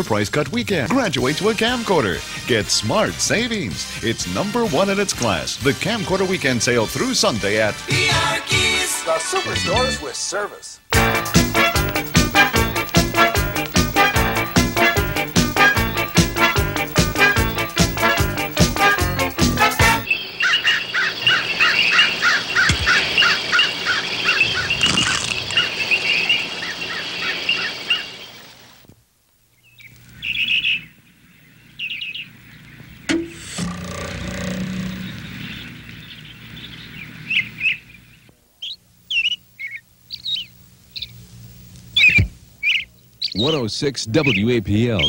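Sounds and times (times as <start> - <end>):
birds chirping and singing: 10.9 - 28.6, 29.6 - 33.1, 34.1 - 41.2, 42.0 - 45.0.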